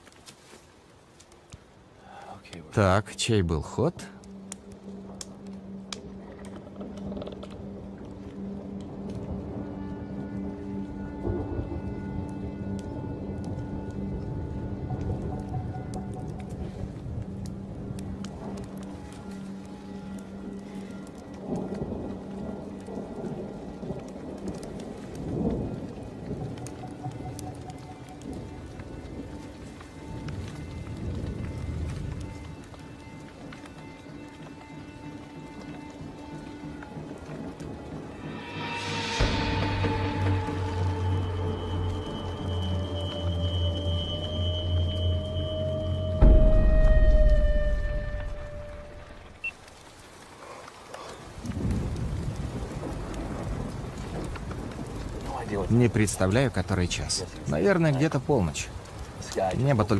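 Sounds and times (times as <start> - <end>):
film score with held notes: 0.0 - 59.9
rain falling: 0.0 - 59.9
thunder rolling: 21.4 - 32.9, 36.4 - 50.3, 51.2 - 59.9.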